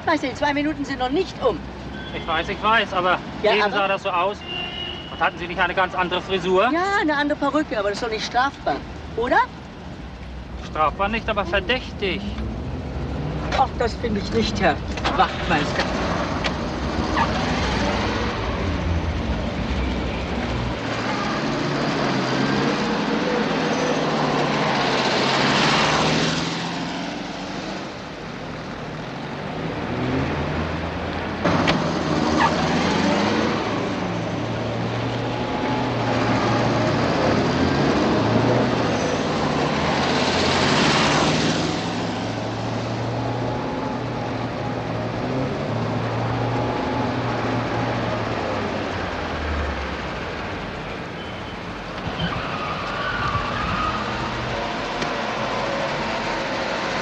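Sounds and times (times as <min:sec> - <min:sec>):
car engines humming: 0:00.0 - 0:57.0
vehicles passing: 0:00.0 - 0:57.0.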